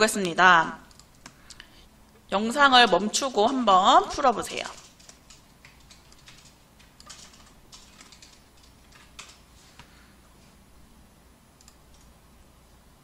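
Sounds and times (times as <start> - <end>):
low steady hum: 0.0 - 13.0
keyboard and mouse clicks: 0.2 - 1.7, 4.7 - 9.9, 11.6 - 12.1.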